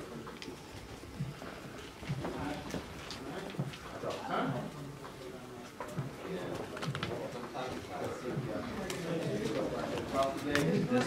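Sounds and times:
low murmured voices: 0:00.0 - 0:11.0.

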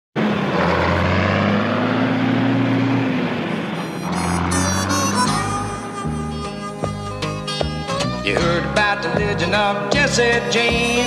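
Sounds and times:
heavy truck engine running: 0:00.2 - 0:08.4
road noise: 0:00.2 - 0:08.4
gliding drone: 0:00.3 - 0:07.4
music: 0:03.8 - 0:11.0.

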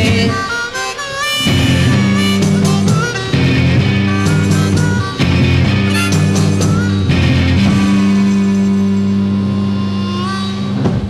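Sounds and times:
held ringing guitar chord: 0:01.4 - 0:10.6.

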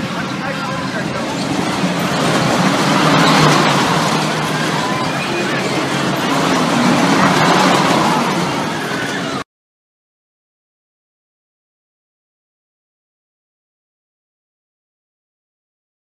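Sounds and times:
carnival rides running: 0:00.0 - 0:09.4
crowd of voices: 0:00.0 - 0:09.4.

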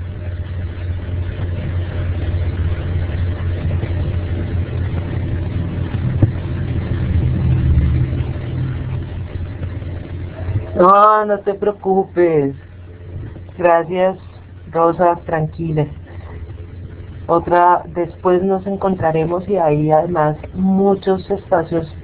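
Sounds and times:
low rumbling background noise: 0:00.0 - 0:22.0.

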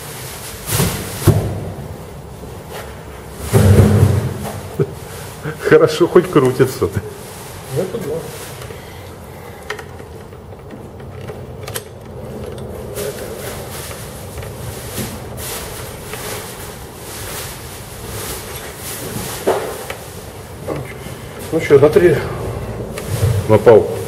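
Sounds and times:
metal scrapes and rustles: 0:10.0 - 0:23.8.

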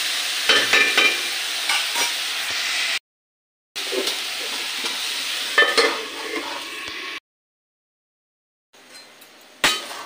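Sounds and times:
potatoes sizzling in oil: 0:00.0 - 0:03.0, 0:03.8 - 0:07.2.

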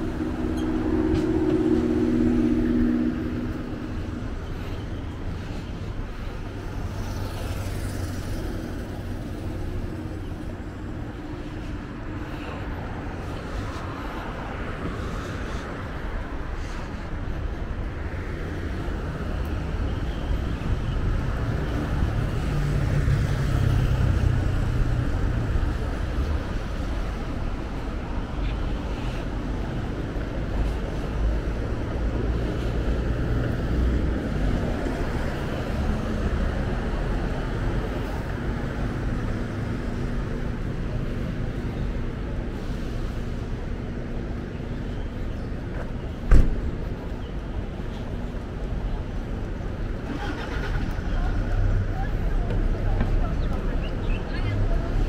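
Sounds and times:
car engines and tyres hum: 0:00.0 - 0:55.0
passing vehicles rumbling: 0:00.0 - 0:55.0.

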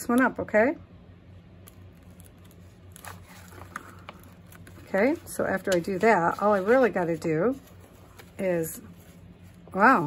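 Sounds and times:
steady low hum: 0:00.0 - 0:10.0
paper rustling: 0:01.9 - 0:09.9.

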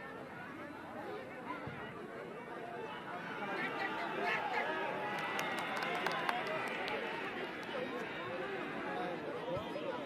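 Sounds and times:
crowd shouting and chattering: 0:00.0 - 0:10.0.

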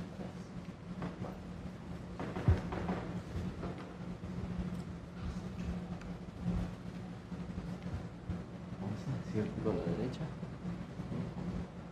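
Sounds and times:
steady low hum: 0:00.0 - 0:11.9
dull thuds: 0:01.0 - 0:04.0.

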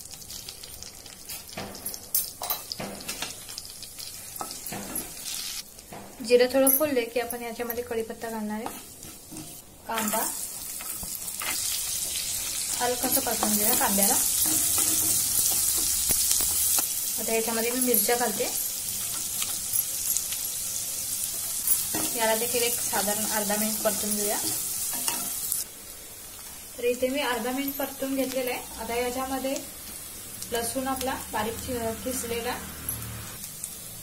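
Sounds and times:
onion sizzling in a pan: 0:00.0 - 0:34.0.

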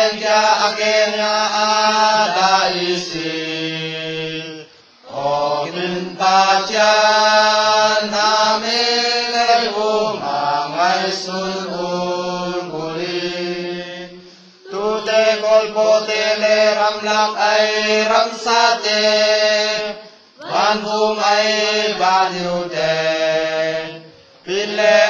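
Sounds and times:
person chanting: 0:00.0 - 0:25.0.

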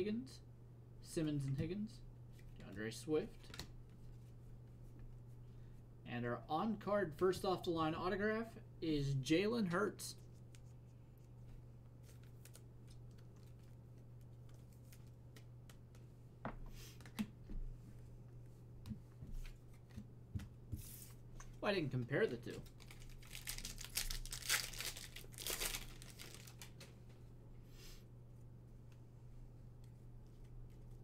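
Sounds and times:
steady low hum: 0:00.0 - 0:24.1
plastic wrapper crinkling: 0:22.4 - 0:26.8.

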